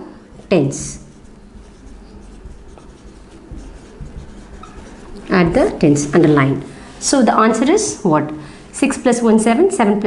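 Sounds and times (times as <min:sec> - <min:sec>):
marker writing on whiteboard: 0:00.3 - 0:06.6.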